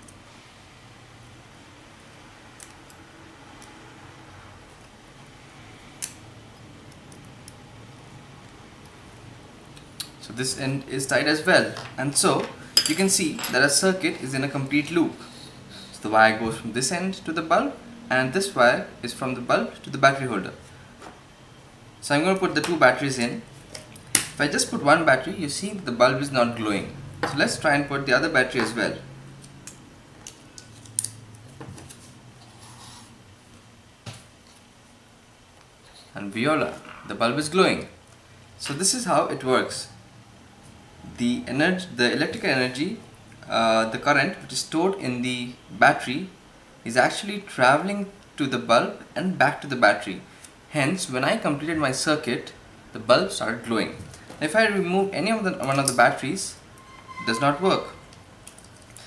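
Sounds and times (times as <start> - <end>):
steady hiss: 0.0 - 30.8.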